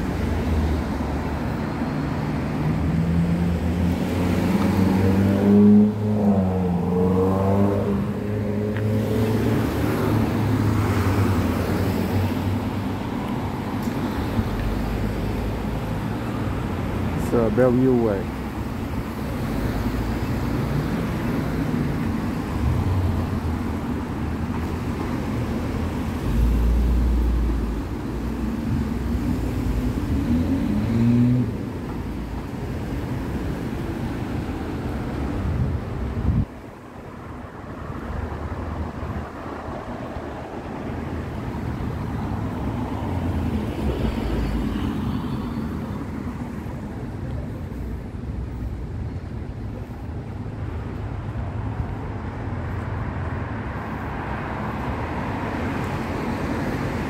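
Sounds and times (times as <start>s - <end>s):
cars driving through intersection: 0.0s - 57.0s
tyres on road: 0.0s - 57.0s.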